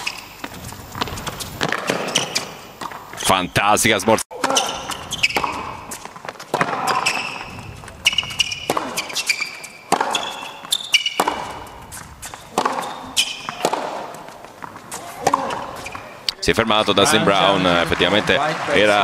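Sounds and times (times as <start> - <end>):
shoes squeaking on court: 0.0 - 3.5, 4.4 - 16.3
racket hitting ball: 0.9 - 3.0, 4.4 - 16.1.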